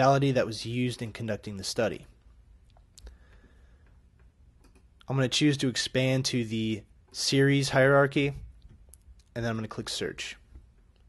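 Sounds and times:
computer mouse click: 4.2 - 5.1.

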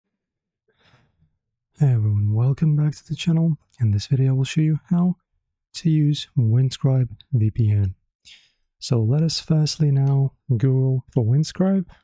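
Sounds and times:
person speaking: 1.8 - 12.0.

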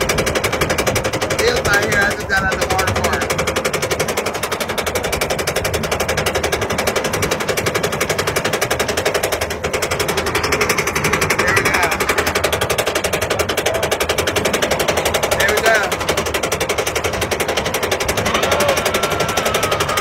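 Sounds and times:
roller coaster chain lift clatter: 0.0 - 20.0.

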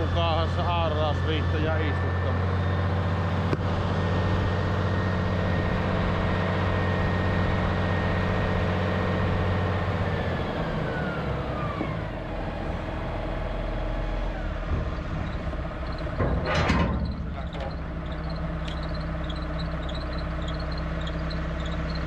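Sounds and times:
high transmission whine: 0.0 - 22.0
tractor engine: 0.0 - 22.0.

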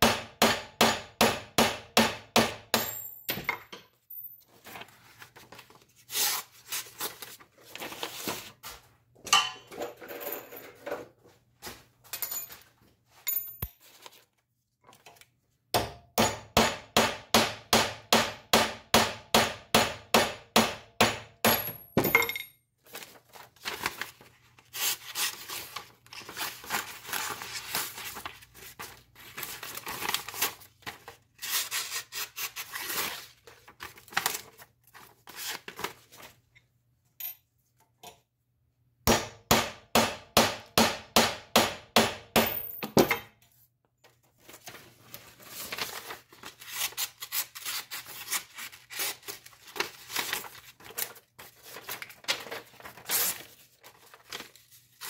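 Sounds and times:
paper sliced and rustled: 4.6 - 8.7, 22.9 - 36.4, 44.4 - 55.0
hammer striking metal: 15.8 - 22.5, 39.1 - 43.3.

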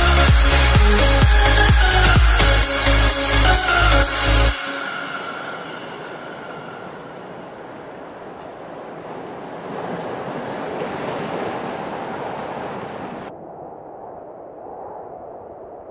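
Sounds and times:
ocean surf breaking: 3.7 - 13.3.

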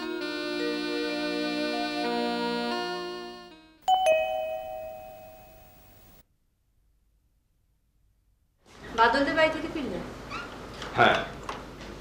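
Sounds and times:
two-note doorbell chime: 3.9 - 6.1.

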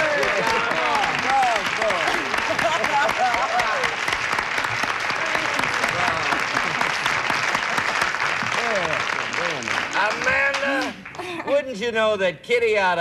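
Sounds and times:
voices over clapping: 0.0 - 11.3
studio audience applauding: 0.0 - 11.7.

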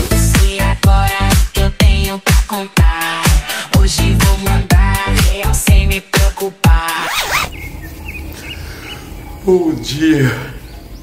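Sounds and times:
music: 0.0 - 7.6
faint high bird chirps: 7.2 - 9.5.

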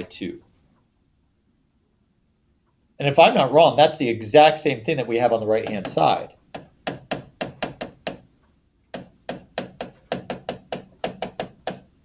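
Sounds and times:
stylus tapping on tablet screen: 5.6 - 8.3, 8.9 - 12.0.

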